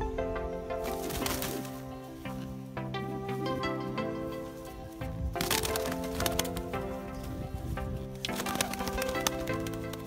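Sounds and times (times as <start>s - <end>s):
instrumental background music: 0.0s - 10.0s
sharp crackling clicks: 5.3s - 7.1s, 8.0s - 10.0s.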